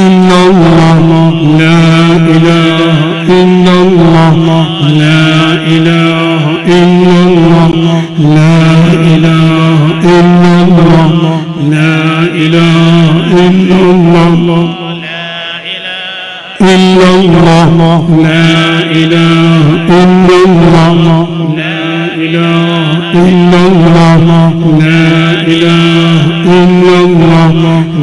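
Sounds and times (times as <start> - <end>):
voices chanting: 11.7 - 16.9, 21.5 - 23.6.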